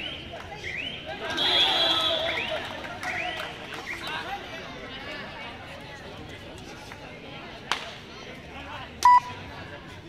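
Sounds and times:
crowd chatter: 0.0s - 10.0s
high electronic beeps: 9.0s - 9.3s.

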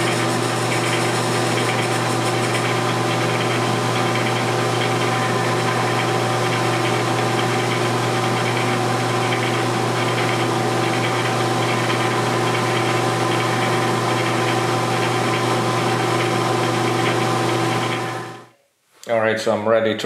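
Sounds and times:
tool cutting steel: 0.0s - 15.0s
metal lathe running: 0.0s - 18.5s.

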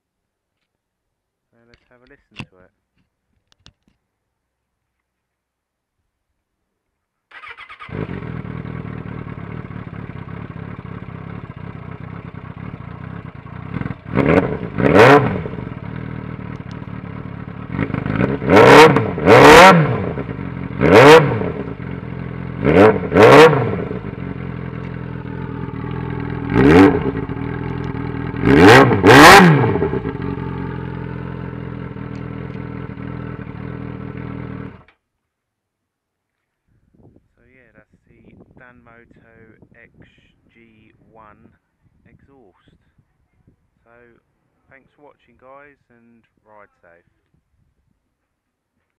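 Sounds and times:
engine throttle blips: 7.3s - 35.0s
motorcycle engine idling: 7.4s - 34.9s.

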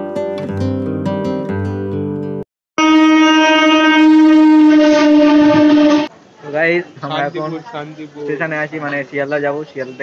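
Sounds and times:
train horn blast: 2.8s - 6.1s.

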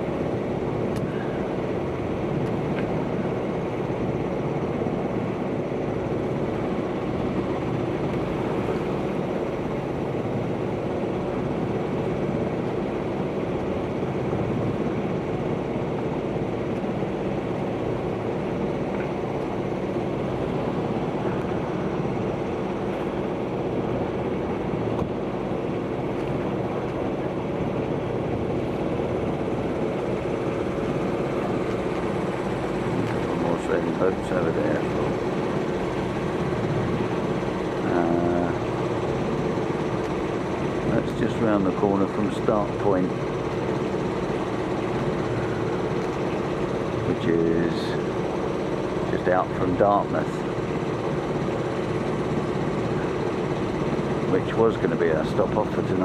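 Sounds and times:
boat engine droning: 0.0s - 56.0s.

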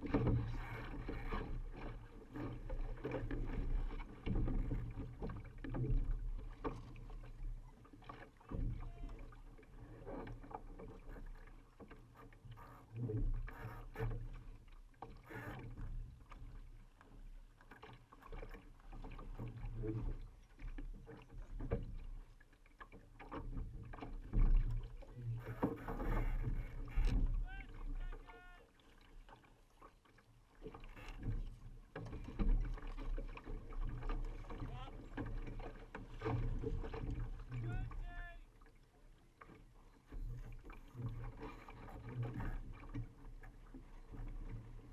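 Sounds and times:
water rushing along hull: 0.0s - 44.9s.

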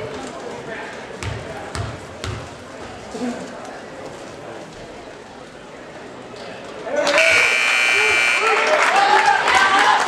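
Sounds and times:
crowd voices and shouts: 4.5s - 10.0s
scoreboard buzzer long tone: 7.2s - 8.7s.

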